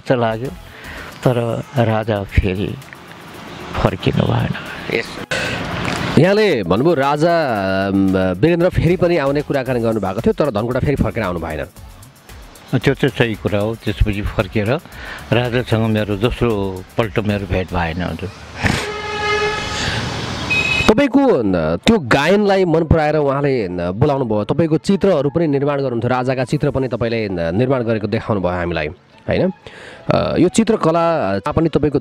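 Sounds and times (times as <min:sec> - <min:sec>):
vehicle horn: 0:18.6 - 0:20.9
brief high steady tone: 0:18.8 - 0:20.9.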